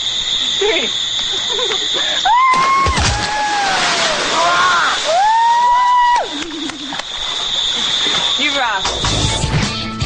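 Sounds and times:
steady hiss: 0:00.0 - 0:02.5, 0:03.3 - 0:09.5.

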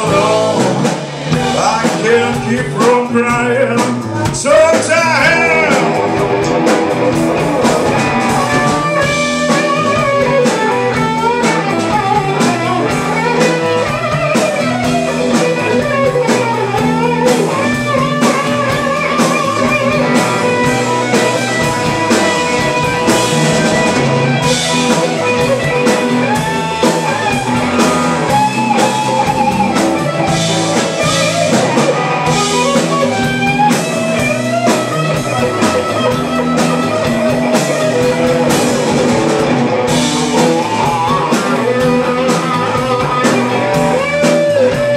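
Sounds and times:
drum kit: 0:00.0 - 0:44.9
electric guitars: 0:00.0 - 0:44.9.

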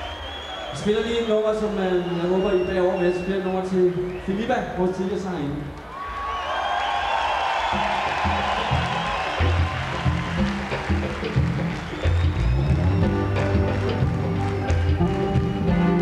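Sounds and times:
crowd noise: 0:00.0 - 0:16.0
bass and drum notes: 0:07.8 - 0:16.0
live pop-rock band: 0:08.6 - 0:16.0
keyboard chords: 0:09.0 - 0:16.0.

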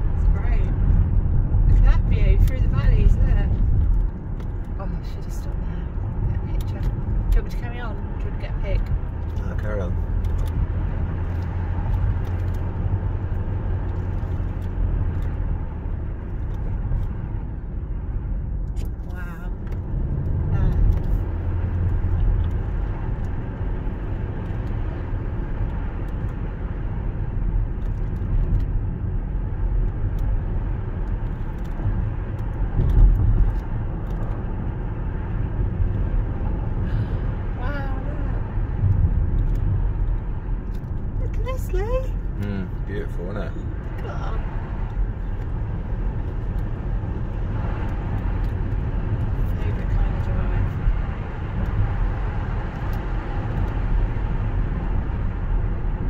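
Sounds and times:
engine and tyre rumble inside car: 0:00.0 - 0:56.0.

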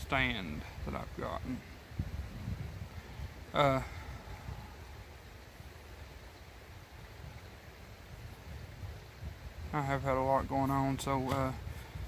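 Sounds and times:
creek running: 0:00.0 - 0:12.0
wind rumble on microphone: 0:00.0 - 0:12.0.

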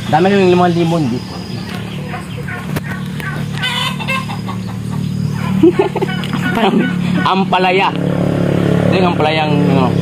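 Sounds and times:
chickens clucking: 0:00.0 - 0:07.8
steady low hum: 0:00.0 - 0:10.0.

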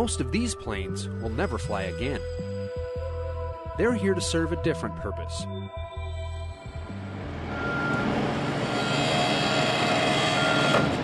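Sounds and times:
heavy machinery running: 0:06.5 - 0:11.0.

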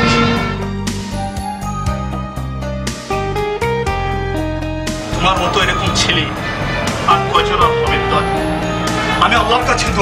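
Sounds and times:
music with long held notes: 0:00.0 - 0:10.0
man talking: 0:05.1 - 0:06.4.

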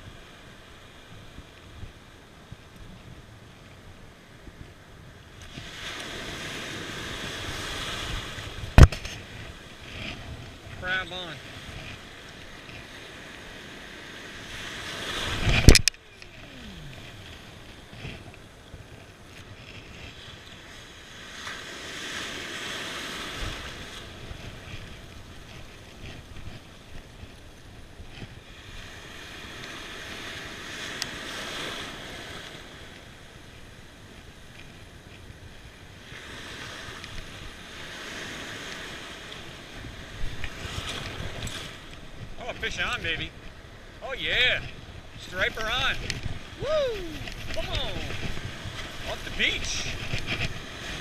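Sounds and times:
ocean surf washing in: 0:00.0 - 0:51.0.

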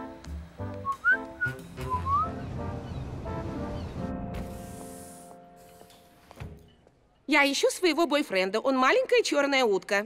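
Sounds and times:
light background music: 0:00.0 - 0:06.3
cheerful whistle: 0:00.8 - 0:02.4.

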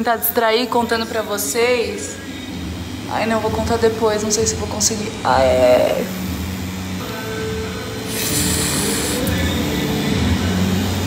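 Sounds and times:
tattoo machine buzzing: 0:00.9 - 0:11.0
hiss: 0:05.6 - 0:11.0.

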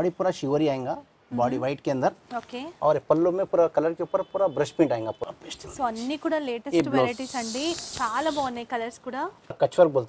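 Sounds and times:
people talking: 0:05.8 - 0:09.3.

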